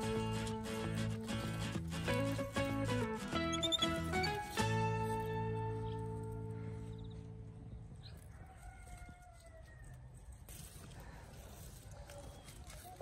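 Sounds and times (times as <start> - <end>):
background music: 0.0 - 7.7
rooster crowing faintly: 8.2 - 13.0.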